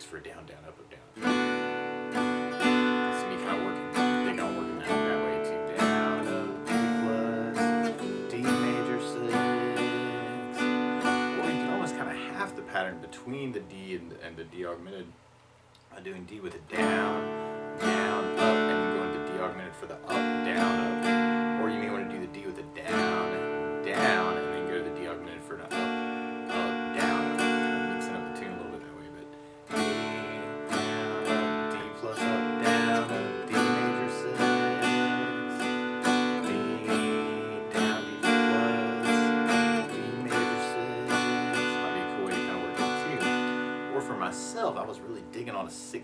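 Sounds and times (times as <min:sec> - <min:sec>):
acoustic guitar strumming: 0:00.0 - 0:15.2, 0:15.9 - 0:46.0.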